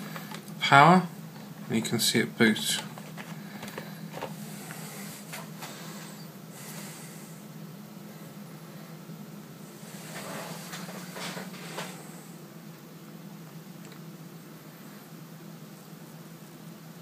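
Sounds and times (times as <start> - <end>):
steady low hum: 0.0 - 17.0
camera handling rustles and bumps: 2.8 - 4.4.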